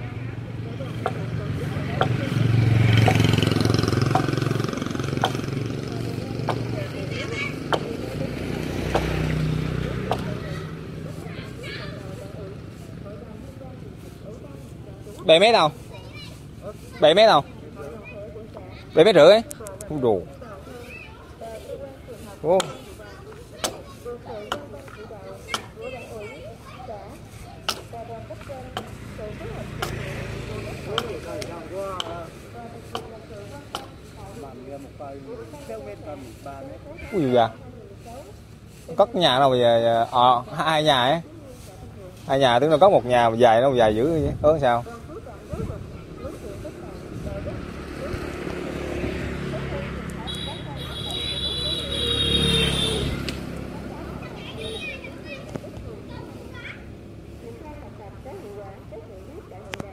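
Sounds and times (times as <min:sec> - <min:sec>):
distant voices: 0:00.0 - 0:59.9
motorbike engine approaching: 0:00.0 - 0:59.9
blade chopping wooden log: 0:02.9 - 0:05.6, 0:06.4 - 0:06.8, 0:07.6 - 0:08.0, 0:08.8 - 0:09.4, 0:10.0 - 0:10.4, 0:29.7 - 0:30.2, 0:30.8 - 0:32.2, 0:32.9 - 0:33.1.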